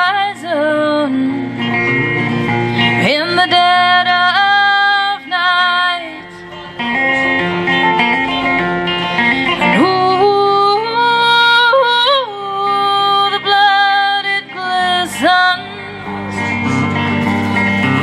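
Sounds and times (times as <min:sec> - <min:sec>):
woman singing: 0:00.0 - 0:01.8, 0:02.8 - 0:06.5, 0:09.6 - 0:16.8
electric guitar: 0:00.0 - 0:18.0.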